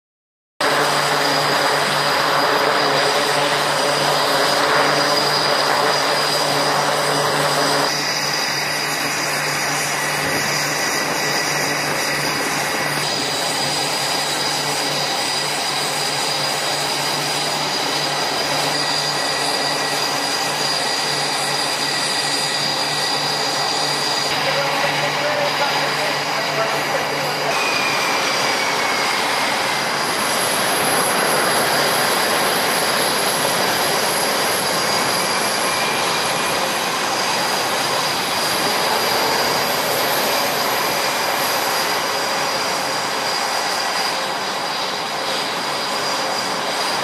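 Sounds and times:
jet engine whine and hum: 0:00.6 - 0:47.0.

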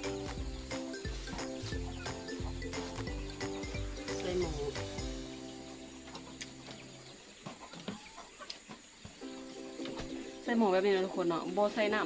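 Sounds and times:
background music with steady beat: 0:00.0 - 0:06.9.

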